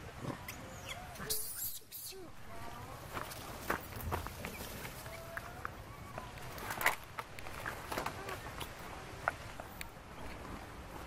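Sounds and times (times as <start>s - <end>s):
monkeys squeaking and cooing: 0.2s - 2.8s
monkeys scampering on dry leaves: 3.0s - 10.7s.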